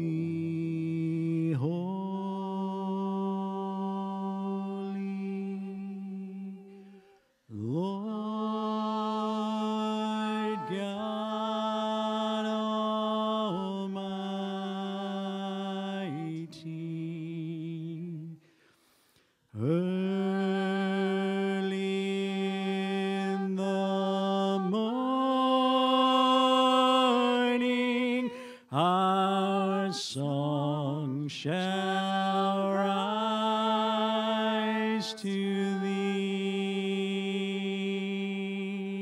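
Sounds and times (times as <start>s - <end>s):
worship singing with vibrato: 0.0s - 39.0s.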